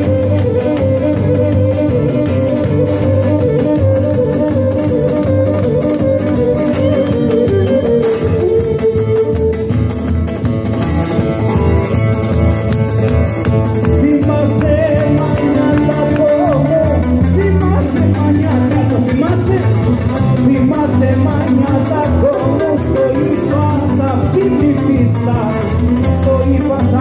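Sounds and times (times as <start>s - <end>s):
strummed lute and guitar: 0.0s - 27.0s.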